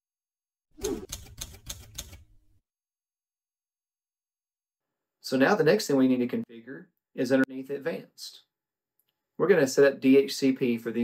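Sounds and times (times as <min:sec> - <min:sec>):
typewriter clacks: 0:00.8 - 0:02.4.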